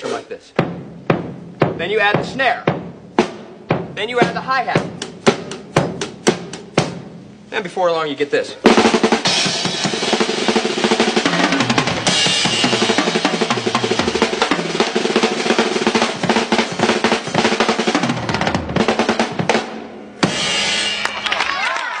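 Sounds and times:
drum kit played fast: 0:00.0 - 0:07.9, 0:08.5 - 0:21.8.

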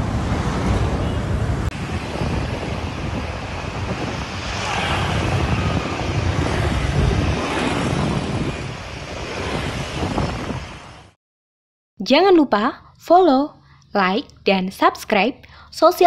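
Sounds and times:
motorbikes going by: 0:00.0 - 0:10.7
street traffic: 0:00.0 - 0:11.2
wind buffeting microphone: 0:00.0 - 0:11.2.

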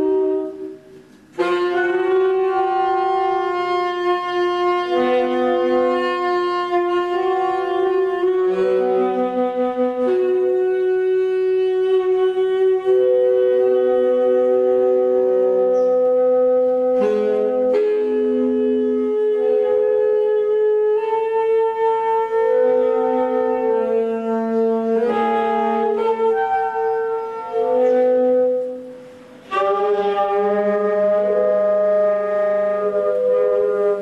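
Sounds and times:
baritone saxophone holding notes: 0:00.0 - 0:34.0
tenor saxophone holding notes: 0:00.0 - 0:34.0.

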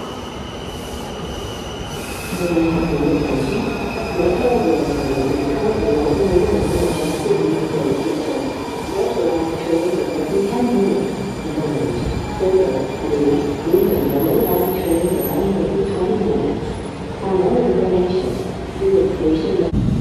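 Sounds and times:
metro train pulling in: 0:00.0 - 0:20.0.

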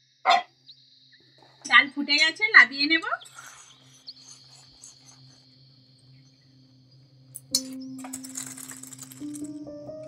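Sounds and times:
high-pitched insect chirring: 0:00.3 - 0:09.1.

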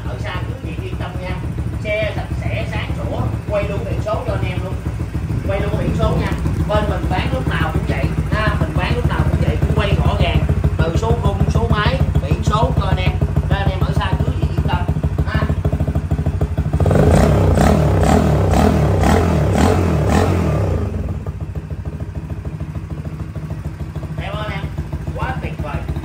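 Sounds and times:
motorcycle engine idling and revving: 0:00.0 - 0:26.0.

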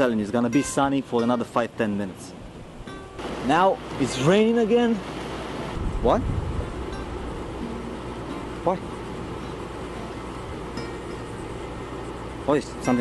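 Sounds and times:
rain falling: 0:03.2 - 0:09.5
low rumble: 0:05.8 - 0:07.6.

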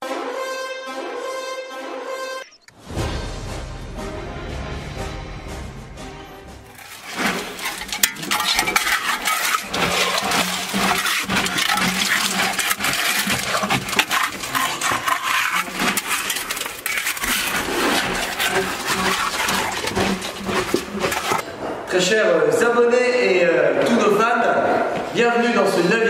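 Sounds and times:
stones clattering together: 0:06.8 - 0:21.4.

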